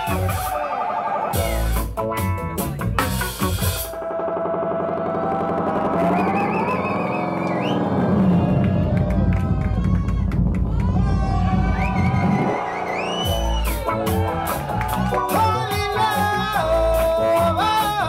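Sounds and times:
bass: 0:00.0 - 0:18.0
drum kit: 0:00.0 - 0:18.0.

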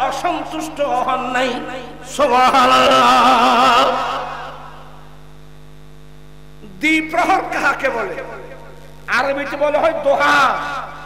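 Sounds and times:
man's amplified voice: 0:00.0 - 0:04.5, 0:06.6 - 0:11.0
electrical mains hum: 0:00.0 - 0:11.0.

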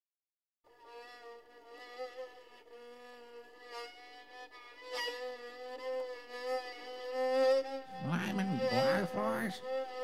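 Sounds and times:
fiddle holding a buzzing note: 0:00.7 - 0:10.0.

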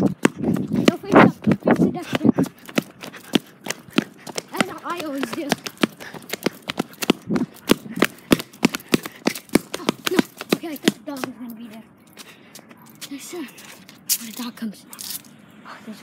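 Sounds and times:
footsteps on pavement: 0:00.0 - 0:15.3.

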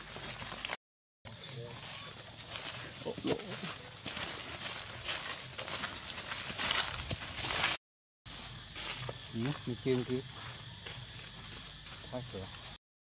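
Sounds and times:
rustling and crunching of dry leaves: 0:00.0 - 0:12.8
monkey call: 0:01.4 - 0:04.3.

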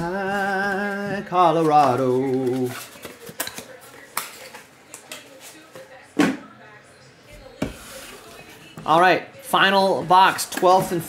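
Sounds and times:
cardboard box and cards handled: 0:01.5 - 0:04.6.

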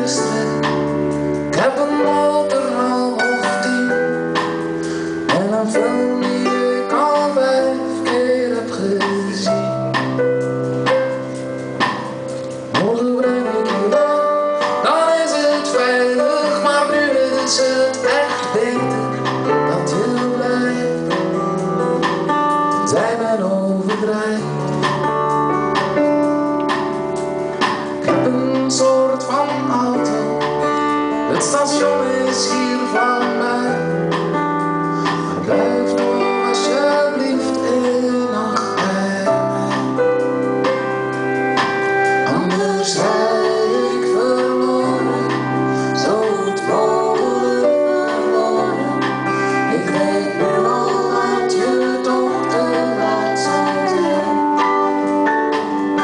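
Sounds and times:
drums: 0:00.0 - 0:56.0
live band playing slow song: 0:00.0 - 0:56.0.

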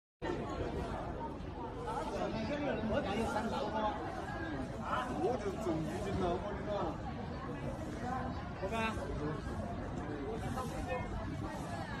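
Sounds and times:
people talking: 0:00.2 - 0:12.0.

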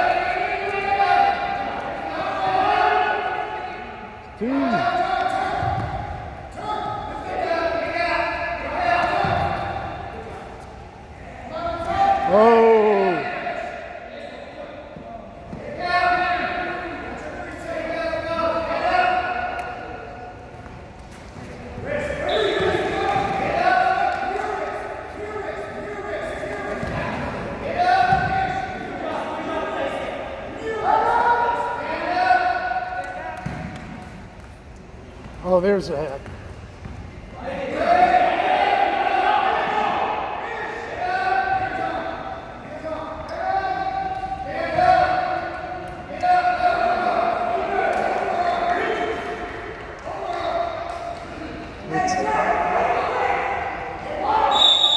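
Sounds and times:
people shouting in echoing gym: 0:00.0 - 0:34.7, 0:35.4 - 0:54.9.

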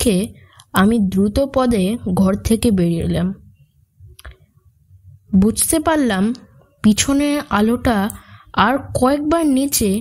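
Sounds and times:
narrator speaking: 0:05.3 - 0:10.0.

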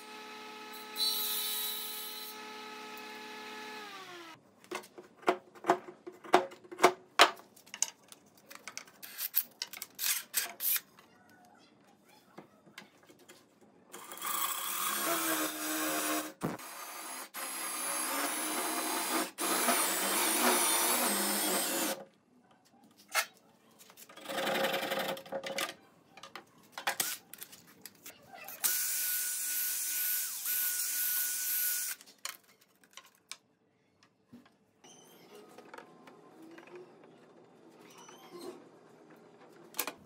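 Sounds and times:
cordless drill boring into wood: 0:00.0 - 0:04.4, 0:14.3 - 0:22.0, 0:28.6 - 0:32.0.

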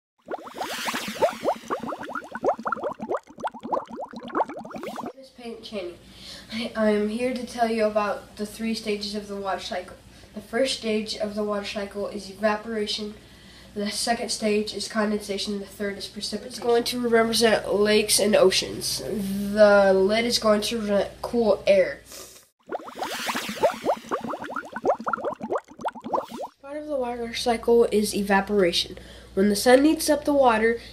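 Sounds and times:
bubbling water bloops: 0:00.2 - 0:05.1, 0:22.6 - 0:26.6.

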